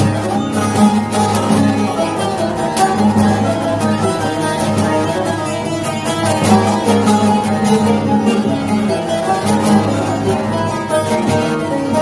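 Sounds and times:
long-necked lutes playing folk music: 0:00.0 - 0:12.0.

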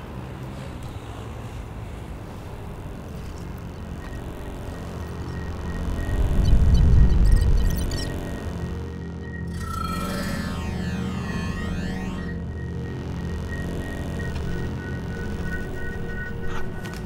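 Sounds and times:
low ambient drone: 0:00.0 - 0:17.0.

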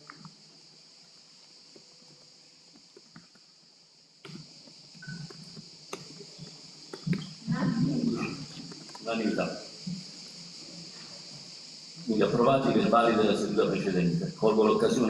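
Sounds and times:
steady hiss: 0:00.0 - 0:15.0
small knocks and clicks: 0:04.2 - 0:07.4
faint voices murmuring: 0:07.0 - 0:09.6.

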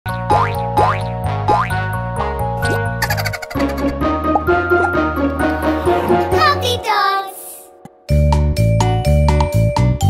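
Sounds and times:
bouncy children's music: 0:00.2 - 0:10.0.

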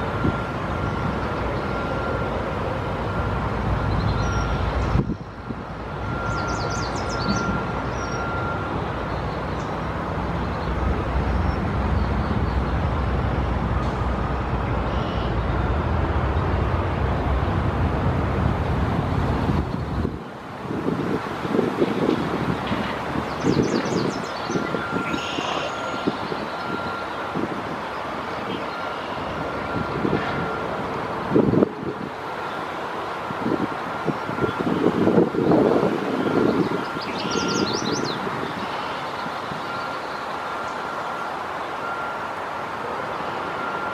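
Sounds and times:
traffic rumble: 0:00.0 - 0:43.9
high bird chirps: 0:06.3 - 0:08.4, 0:23.4 - 0:26.8, 0:36.6 - 0:39.0.

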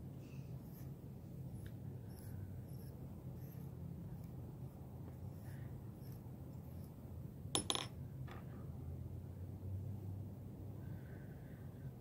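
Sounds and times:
small hard object clinking: 0:07.6 - 0:07.9.

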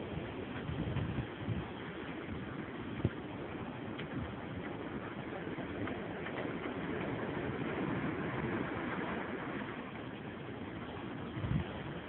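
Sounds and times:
sea: 0:00.0 - 0:12.0
wind on microphone: 0:00.0 - 0:12.0.

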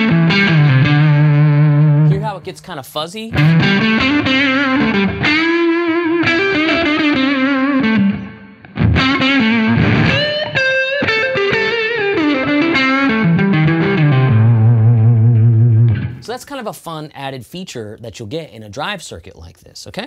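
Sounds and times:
distorted electric guitar lead: 0:00.0 - 0:02.6, 0:03.3 - 0:16.3.

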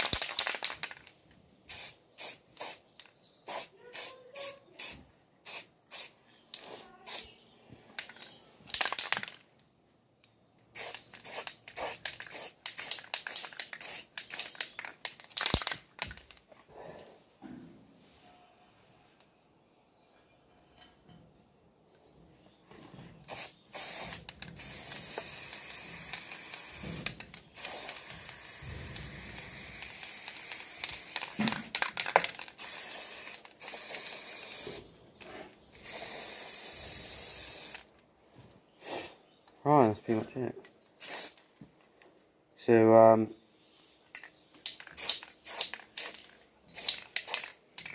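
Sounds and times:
spray paint can hissing: 0:01.7 - 0:02.9, 0:03.5 - 0:06.1, 0:07.1 - 0:07.3, 0:10.7 - 0:15.8, 0:23.3 - 0:34.9, 0:35.8 - 0:37.9, 0:41.0 - 0:41.4, 0:44.7 - 0:47.6.

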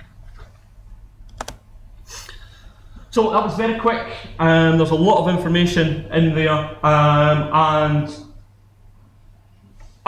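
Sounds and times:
steady low hum: 0:00.0 - 0:10.0
laptop keyboard clicks: 0:01.3 - 0:01.6.

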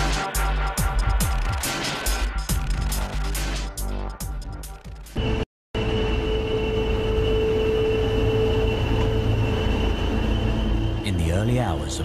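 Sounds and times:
high whine: 0:05.2 - 0:12.0
train hum: 0:05.2 - 0:12.0
train rumbling: 0:05.2 - 0:12.0.

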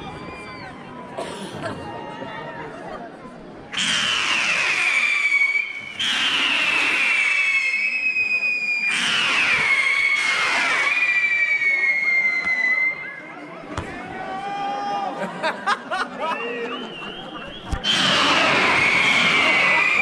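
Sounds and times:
whistling firework rockets: 0:04.2 - 0:14.0, 0:16.7 - 0:20.0.

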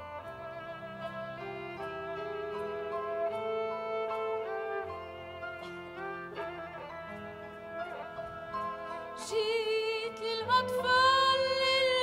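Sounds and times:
violin melody with vibrato: 0:00.0 - 0:12.0.

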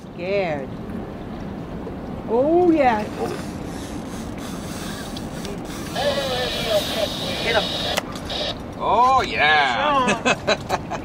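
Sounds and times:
fishing reel whirring: 0:03.2 - 0:08.6.

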